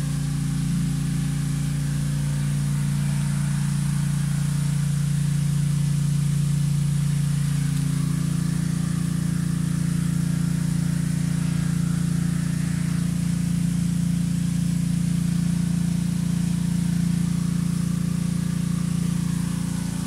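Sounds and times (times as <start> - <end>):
machine humming: 0.0 - 20.0.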